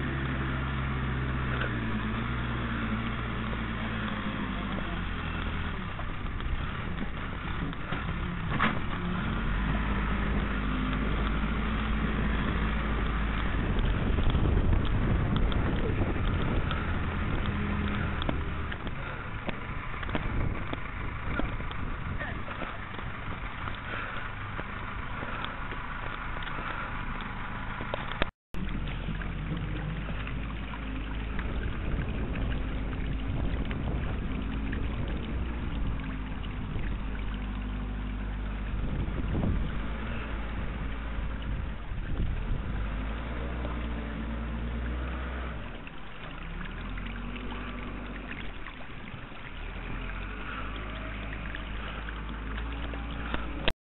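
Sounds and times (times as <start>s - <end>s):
bulldozer diesel engine running: 0.0s - 53.7s
wind rumbling on microphone: 0.0s - 53.7s.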